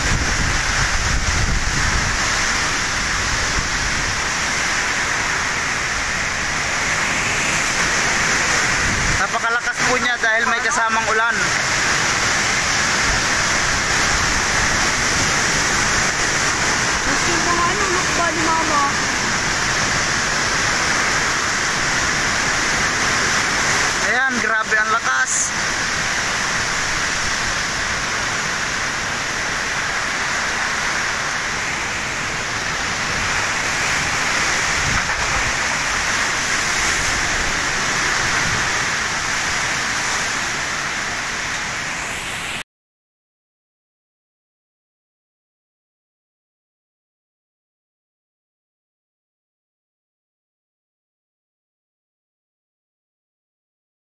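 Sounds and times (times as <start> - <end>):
wind-driven heavy rain: 0.0 - 42.6
person's voice: 9.1 - 11.6, 17.0 - 19.4, 24.0 - 25.6.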